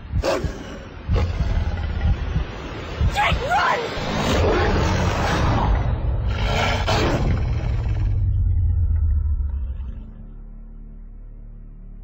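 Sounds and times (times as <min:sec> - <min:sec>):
deep steady rumble: 0:00.0 - 0:12.0.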